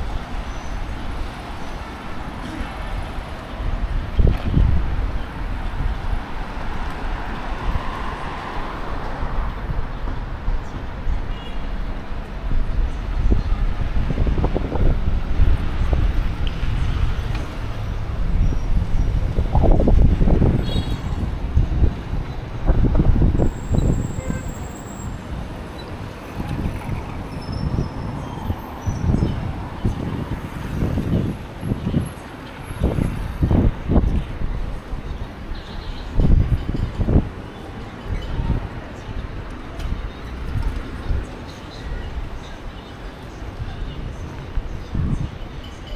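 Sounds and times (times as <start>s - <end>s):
traffic: 0.0s - 45.9s
wind rumbling on microphone: 0.0s - 45.9s.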